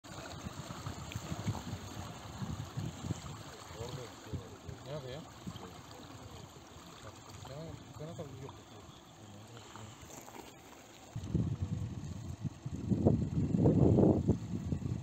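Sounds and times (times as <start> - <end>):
water sloshing and splashing: 0.0 - 11.6.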